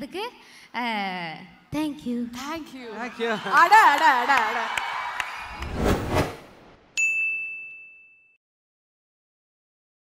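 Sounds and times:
bright high ding: 7.0s - 8.4s.

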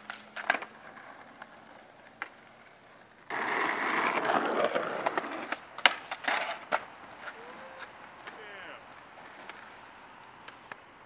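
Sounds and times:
skateboard clacking on ground: 0.0s - 10.9s
skateboard wheels rolling on pavement: 0.0s - 11.0s.

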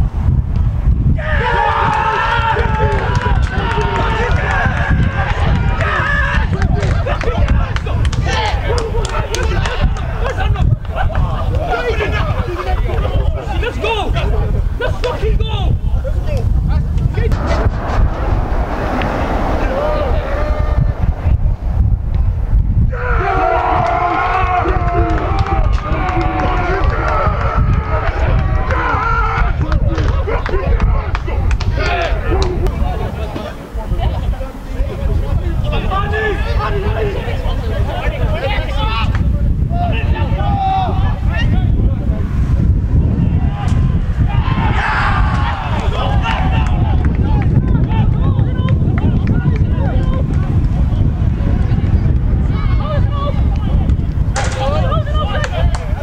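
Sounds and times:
wind rumble on microphone: 0.0s - 56.0s
people shouting and cheering: 1.2s - 56.0s
low rumble: 15.6s - 30.0s.

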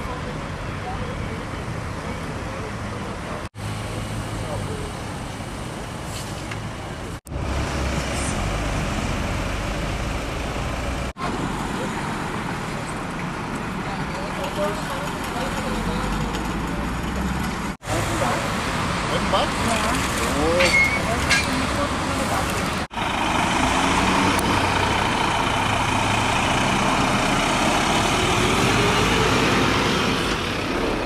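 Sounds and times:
road traffic noise: 0.0s - 31.0s.

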